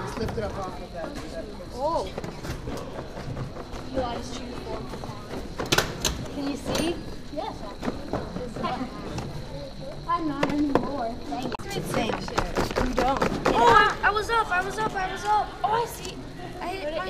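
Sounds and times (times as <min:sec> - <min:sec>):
indistinct voices and chatter: 0:00.0 - 0:17.0.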